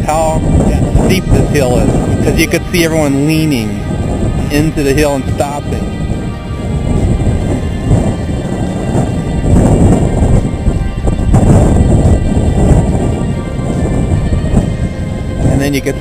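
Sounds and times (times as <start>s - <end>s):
wind buffeting microphone: 0.0s - 16.0s.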